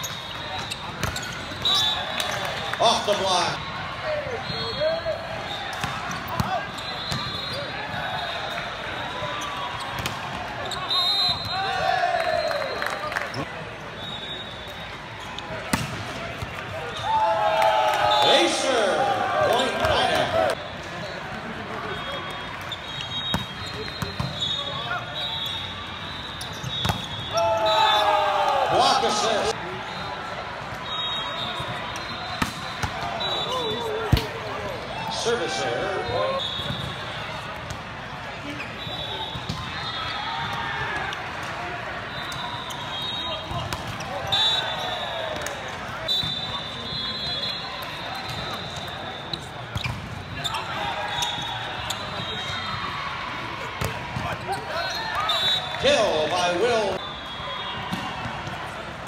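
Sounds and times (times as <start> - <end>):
players shouting: 1.2 - 12.8, 16.8 - 20.6, 27.3 - 30.0, 32.8 - 36.4
ball striking the court: 15.7 - 16.2.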